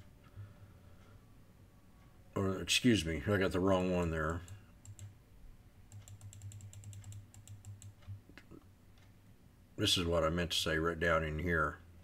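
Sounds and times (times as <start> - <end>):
low steady hum: 0.0 - 12.0
faint computer keys clicking: 3.7 - 5.2, 5.9 - 9.3.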